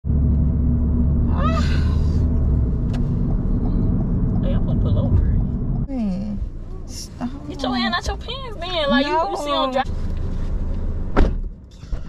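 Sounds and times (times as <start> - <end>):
car cabin rumble: 0.0 - 12.0.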